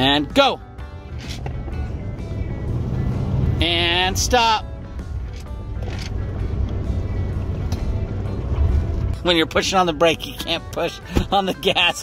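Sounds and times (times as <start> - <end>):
background music: 0.0 - 12.0
pickup engine rumble: 0.8 - 11.6.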